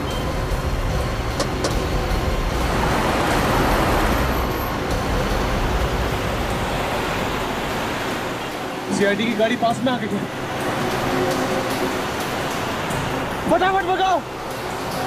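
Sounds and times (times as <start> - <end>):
car engine and road noise: 0.0 - 15.0.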